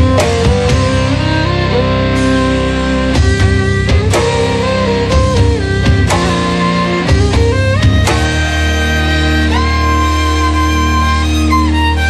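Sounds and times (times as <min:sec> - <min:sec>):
folk rock guitar chords: 0:00.0 - 0:12.0.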